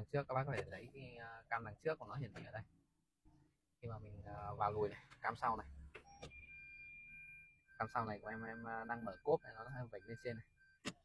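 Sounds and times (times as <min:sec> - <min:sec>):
reverse warning beep: 0:06.0 - 0:10.9.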